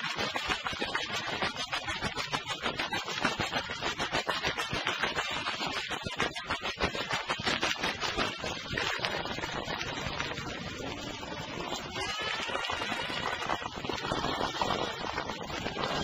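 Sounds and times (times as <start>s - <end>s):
vinyl crackle and surface noise: 0.0s - 16.0s.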